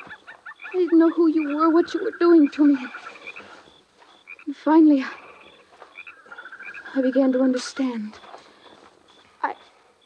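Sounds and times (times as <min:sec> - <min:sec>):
small frogs chirping: 0:00.0 - 0:10.0.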